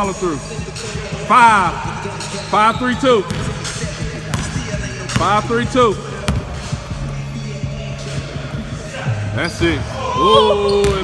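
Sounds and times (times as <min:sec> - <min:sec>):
background music: 0:00.0 - 0:11.0
basketball bouncing on hardwood floor: 0:04.3 - 0:05.4, 0:06.3 - 0:06.6.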